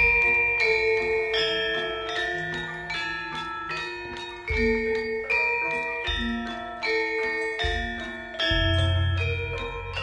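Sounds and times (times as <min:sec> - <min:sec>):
gamelan metallophones and gongs: 0:00.0 - 0:10.0.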